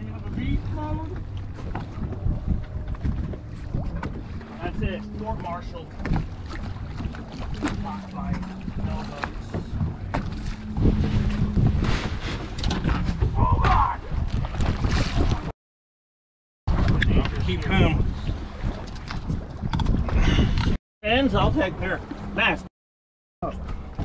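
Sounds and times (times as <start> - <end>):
idling boat engine hum: 0.0 - 14.0, 21.1 - 22.7
wind buffeting microphone: 0.0 - 15.5, 16.7 - 22.4.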